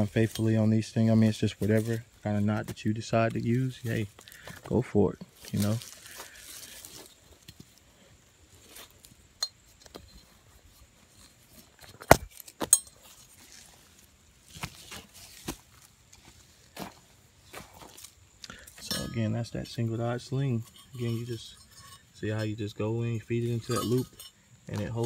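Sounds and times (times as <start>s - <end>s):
metal rigging hardware clinking: 0.0s - 2.1s, 8.6s - 13.6s, 18.5s - 25.0s.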